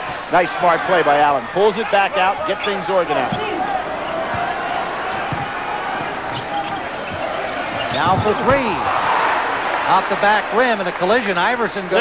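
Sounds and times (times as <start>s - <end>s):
murmur of arena crowd: 0.0s - 12.0s
basketball dribbled on hardwood: 4.2s - 6.4s.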